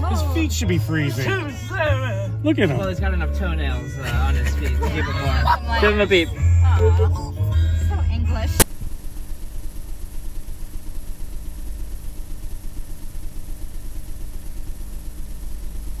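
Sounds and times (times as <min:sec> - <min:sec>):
tv static rumble: 0:08.6 - 0:16.0.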